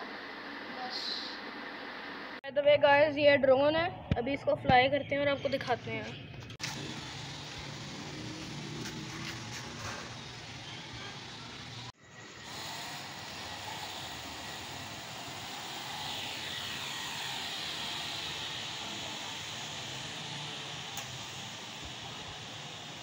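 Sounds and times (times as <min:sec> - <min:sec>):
toy drone propellers buzzing: 0:06.6 - 0:23.0.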